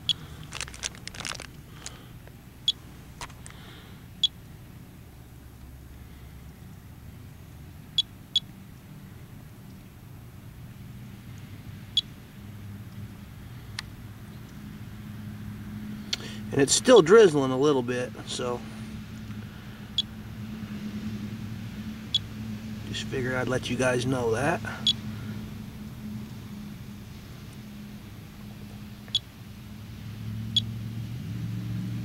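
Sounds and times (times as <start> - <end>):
burst of crackle: 0.4 - 2.0.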